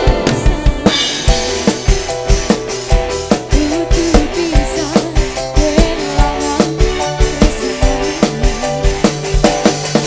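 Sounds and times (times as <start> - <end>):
band playing: 0.0 - 10.0
drum kit beating fast pulse: 0.0 - 10.0.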